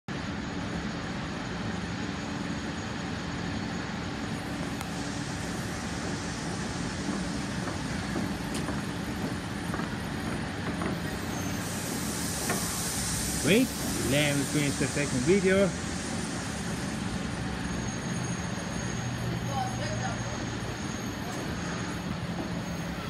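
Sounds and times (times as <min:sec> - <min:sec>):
train humming and rumbling: 0:00.1 - 0:23.0.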